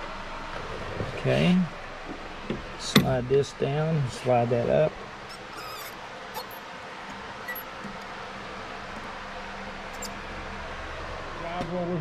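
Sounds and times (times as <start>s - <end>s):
clicks and metallic squeaks: 5.3s - 6.6s, 7.4s - 7.7s, 9.9s - 10.2s.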